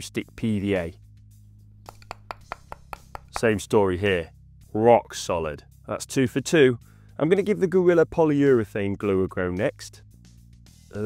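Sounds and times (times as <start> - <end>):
quiet background music: 0.0 - 11.0
screwdriver tip tapping hard glue: 1.8 - 3.6.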